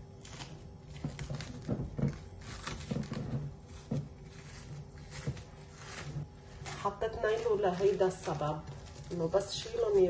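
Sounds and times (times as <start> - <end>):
cling film crinkling: 0.0 - 10.0.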